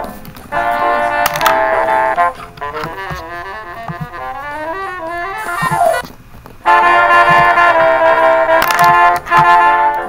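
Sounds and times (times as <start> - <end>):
saxophone run: 0.5 - 10.0
sustained brass notes: 0.5 - 10.0.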